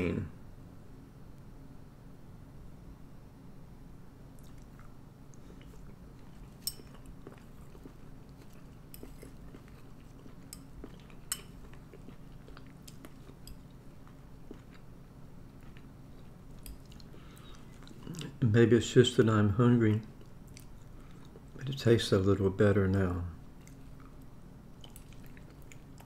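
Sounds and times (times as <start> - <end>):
faint low hum: 0.0 - 26.0
person chewing: 4.3 - 18.4, 20.0 - 21.6, 23.4 - 26.0.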